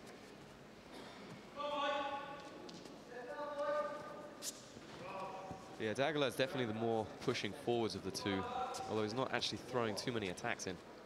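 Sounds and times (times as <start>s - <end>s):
man speaking: 5.0s - 10.8s.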